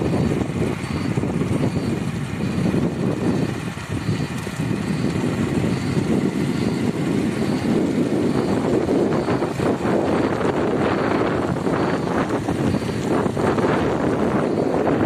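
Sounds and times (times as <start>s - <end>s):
vehicle driving rumble: 0.0s - 15.0s.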